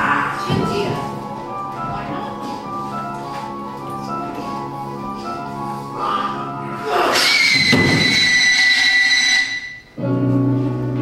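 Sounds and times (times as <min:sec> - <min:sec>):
musical sting with high shriek: 0:06.8 - 0:10.0.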